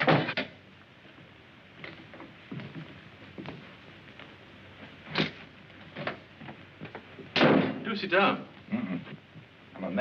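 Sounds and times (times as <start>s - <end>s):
loud sharp bang: 7.4s - 7.9s.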